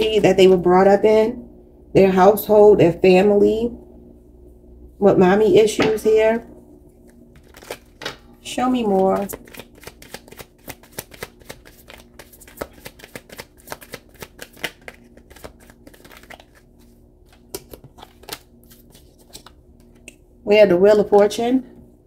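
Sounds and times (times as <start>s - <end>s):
playing cards being shuffled: 7.0s - 20.1s.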